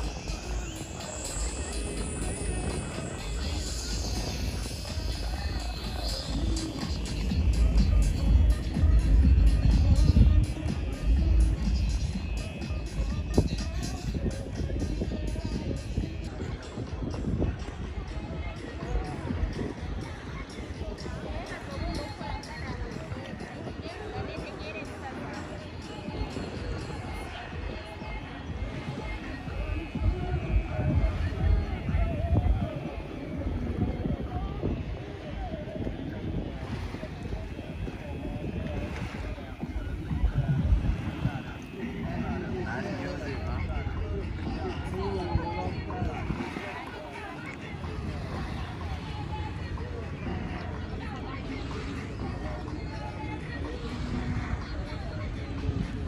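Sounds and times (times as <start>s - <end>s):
constant low rumble: 0.0s - 23.6s, 26.5s - 56.0s
faint voices: 0.0s - 56.0s
light waves at shoreline: 0.0s - 56.0s
music with steady beat: 0.0s - 56.0s
wind buffeting microphone: 0.0s - 56.0s.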